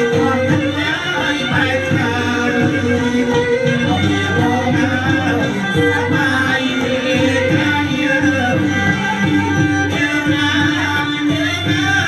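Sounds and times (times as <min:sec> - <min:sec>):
hand drums: 0:00.0 - 0:12.0.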